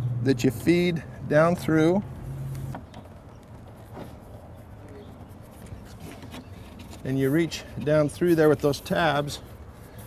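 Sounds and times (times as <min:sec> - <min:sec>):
low outdoor background: 0:00.0 - 0:10.0.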